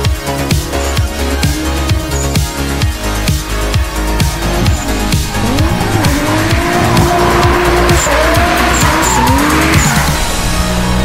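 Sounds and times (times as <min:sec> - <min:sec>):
background music with a beat: 0:00.0 - 0:11.0
tyres squealing: 0:03.0 - 0:10.3
car engine revving: 0:03.0 - 0:11.0.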